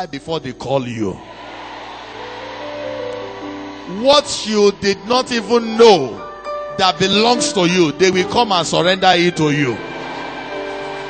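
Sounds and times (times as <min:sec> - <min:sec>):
soft keyboard chords: 0:02.9 - 0:11.0.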